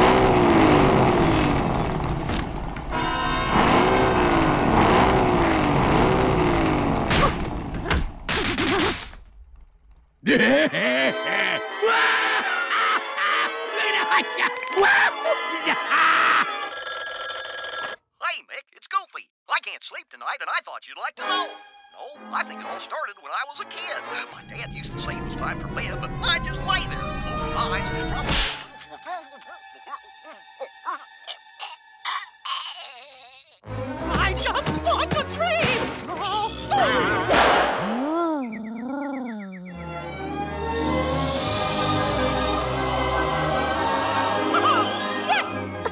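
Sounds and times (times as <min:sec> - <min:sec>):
music: 0:02.9 - 0:03.6, 0:10.4 - 0:16.6, 0:21.2 - 0:32.5, 0:33.6 - 0:37.5, 0:39.7 - 0:45.9
telephone bell ringing: 0:16.6 - 0:18.0
person talking: 0:18.2 - 0:36.6, 0:37.8 - 0:40.0
voice-like howl: 0:37.8 - 0:39.9.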